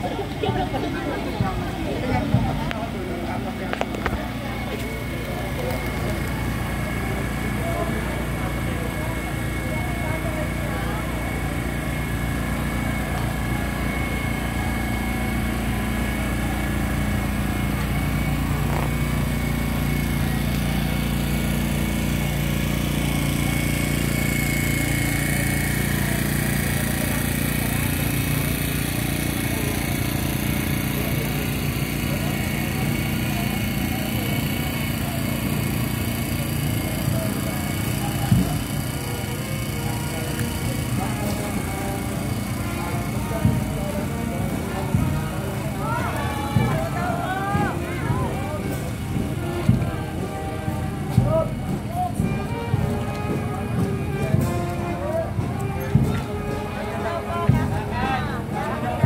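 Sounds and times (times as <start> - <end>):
people's voices: 0.0 - 59.0
small engine humming: 0.0 - 59.0.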